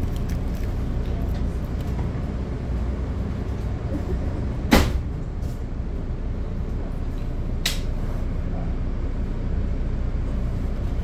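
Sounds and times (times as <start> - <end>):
low rumble inside train coach: 0.0 - 11.0
sharp clunk: 4.7 - 5.0.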